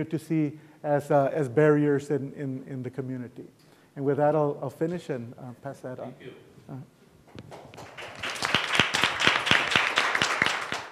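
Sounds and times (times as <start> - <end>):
small audience applauding: 7.5 - 10.9.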